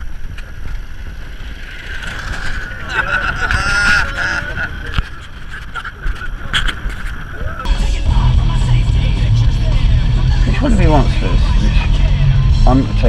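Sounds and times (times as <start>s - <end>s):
wind at open window: 0.0s - 7.7s
car engine rumble: 0.0s - 13.0s.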